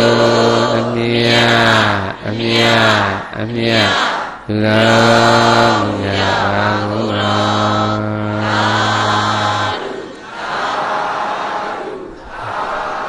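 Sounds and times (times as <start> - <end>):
congregation chanting in unison: 0.0 - 13.0.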